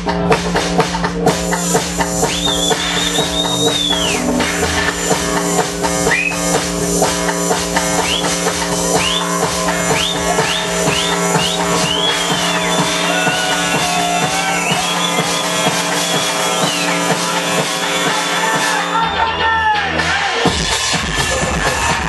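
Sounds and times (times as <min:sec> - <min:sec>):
steady dance beat: 0:00.0 - 0:22.0
high sweeping tone: 0:01.5 - 0:19.4
held low tone: 0:02.2 - 0:13.8.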